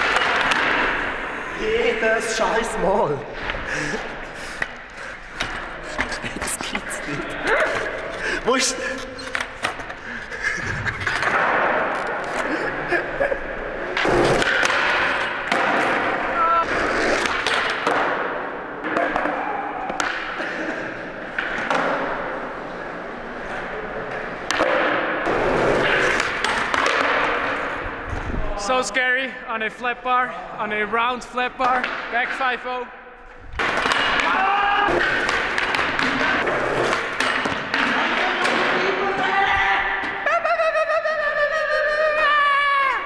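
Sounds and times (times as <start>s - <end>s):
skateboard wheels rolling on concrete: 13.6s - 19.3s, 25.2s - 28.3s, 33.5s - 39.3s.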